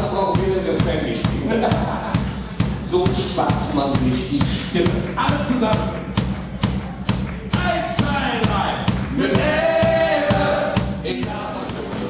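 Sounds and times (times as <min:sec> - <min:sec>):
bass line: 0:00.0 - 0:12.0
drum beat: 0:00.0 - 0:12.0
group of voices singing: 0:08.7 - 0:12.0.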